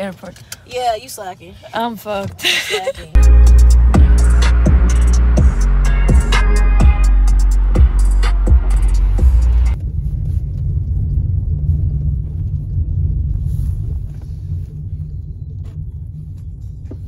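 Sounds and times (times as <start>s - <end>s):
low rumble inside moving car: 3.0s - 17.0s
music with a beat: 3.2s - 9.8s.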